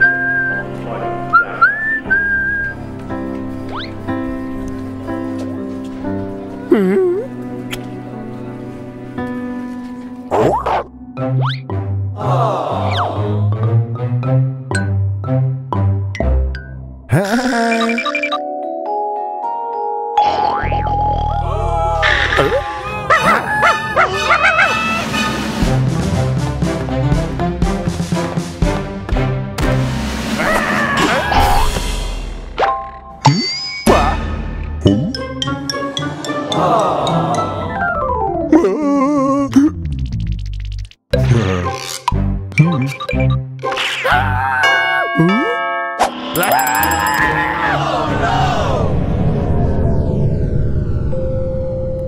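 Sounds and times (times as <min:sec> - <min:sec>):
light background music: 0:00.0 - 0:16.8
cartoon character whistling a tune: 0:01.3 - 0:02.8
cartoon characters laughing: 0:17.1 - 0:18.4, 0:20.3 - 0:25.3
cartoon music: 0:17.1 - 0:18.6, 0:34.8 - 0:40.1, 0:41.2 - 0:45.7, 0:46.4 - 0:48.0
rising swoop: 0:47.8 - 0:51.9.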